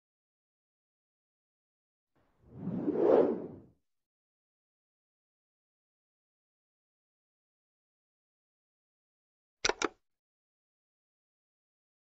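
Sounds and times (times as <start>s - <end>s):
whoosh sound effect: 2.5s - 3.7s.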